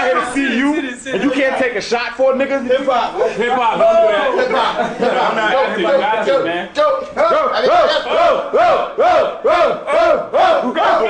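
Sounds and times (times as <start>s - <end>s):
men chanting a shout in unison: 7.2s - 11.0s.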